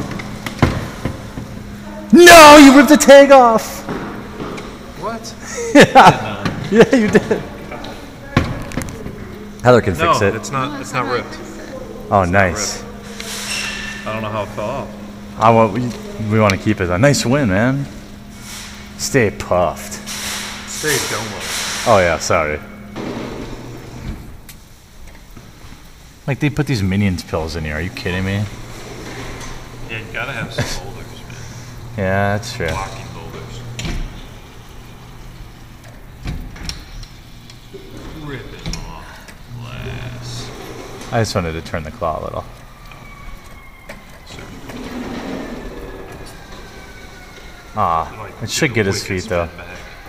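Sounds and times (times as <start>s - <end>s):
claw machine motor whining: 27.3s - 50.0s.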